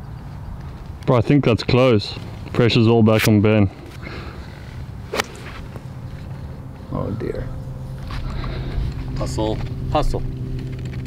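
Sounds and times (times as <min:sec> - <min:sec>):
low steady hum: 0:02.2 - 0:11.0
golf club striking ball: 0:05.1 - 0:05.9.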